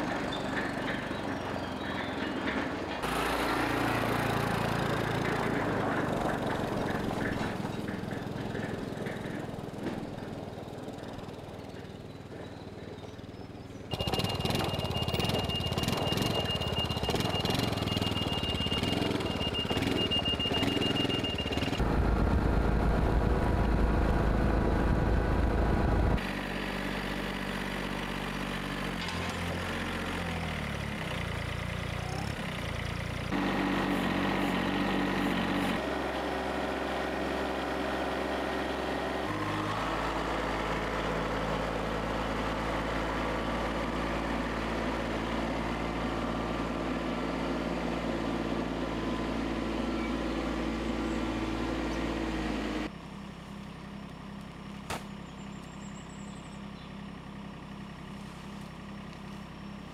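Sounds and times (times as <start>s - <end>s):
quad bike engine running: 0.0s - 28.2s
diesel tractor engine running: 0.0s - 59.9s.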